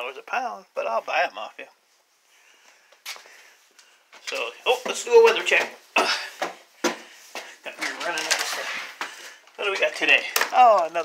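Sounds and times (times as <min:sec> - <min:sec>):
footsteps on wooden steps: 0:02.9 - 0:08.2, 0:08.8 - 0:10.8.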